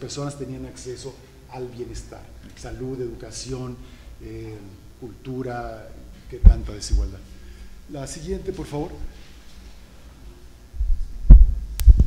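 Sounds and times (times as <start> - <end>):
microphone handling thumps: 6.3 - 7.7, 10.8 - 12.0
sharp click: 11.7 - 12.0.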